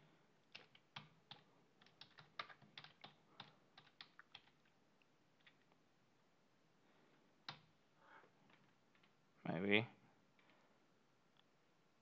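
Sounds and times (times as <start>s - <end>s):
computer keyboard typing: 0.4s - 4.7s, 7.4s - 7.7s.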